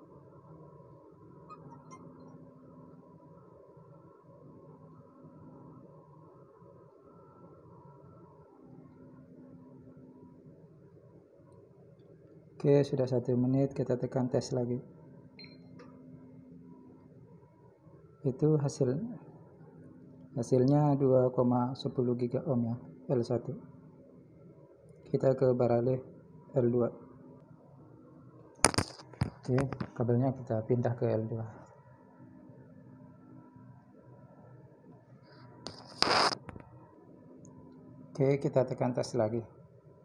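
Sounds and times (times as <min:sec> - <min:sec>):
faint low steady hum: 0:00.0 - 0:40.0.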